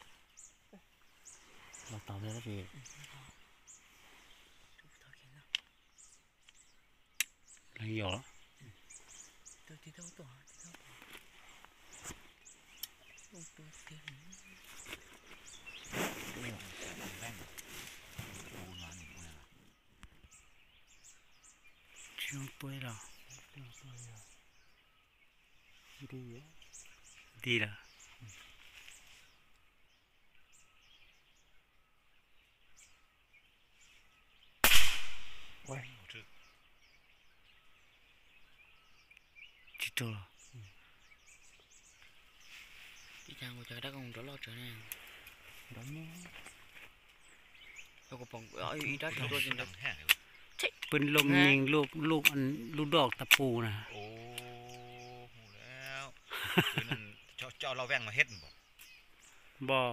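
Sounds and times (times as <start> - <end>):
birds chirping: 0.0 - 59.9
air rifle crack: 34.6 - 35.6
man speaking syllable: 48.3 - 50.1, 50.9 - 56.1.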